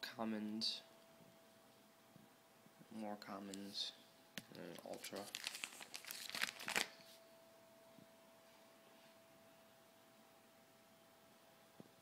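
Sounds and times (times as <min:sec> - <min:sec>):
plastic pages crinkling: 0:04.6 - 0:07.1.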